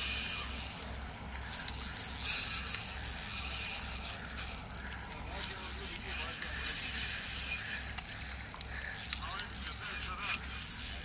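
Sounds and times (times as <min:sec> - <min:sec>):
faint reel clicks: 0:00.0 - 0:11.0
fishing reel gears whirring: 0:00.0 - 0:11.0.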